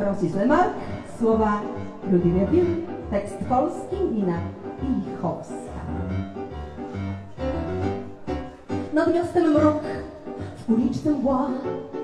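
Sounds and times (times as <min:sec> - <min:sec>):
keyboard with pulsing bass line: 0:00.0 - 0:08.8.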